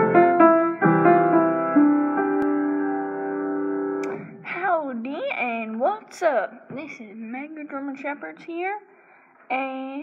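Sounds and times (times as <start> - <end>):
person speaking: 4.0 - 8.9.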